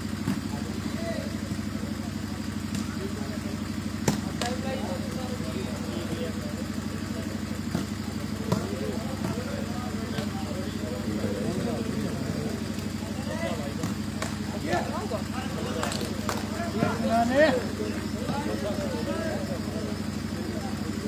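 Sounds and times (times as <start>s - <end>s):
low engine-like drone: 0.0s - 21.0s
murmur of voices: 0.0s - 21.0s
volleyball hit by hand: 0.2s - 0.6s, 4.0s - 4.6s, 7.6s - 10.4s, 13.7s - 14.8s.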